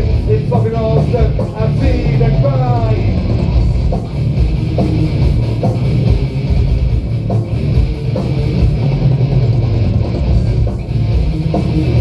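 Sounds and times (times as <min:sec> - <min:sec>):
bass guitar: 0:00.0 - 0:12.0
distorted electric guitars: 0:00.0 - 0:12.0
drums: 0:00.0 - 0:12.0.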